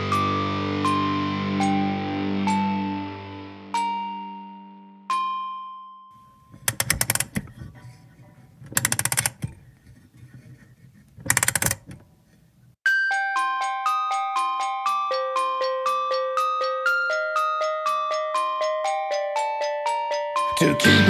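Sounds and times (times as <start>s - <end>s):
music box playing: 6.2s - 7.4s, 12.9s - 21.0s
rapid clockwork clicking: 6.6s - 7.4s, 8.8s - 9.4s.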